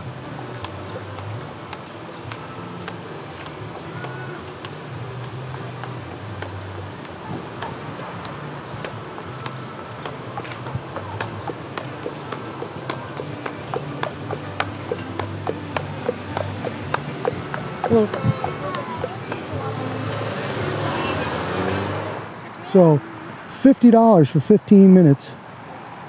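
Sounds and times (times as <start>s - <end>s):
horse hooves clip-clopping on asphalt: 0.0s - 21.3s.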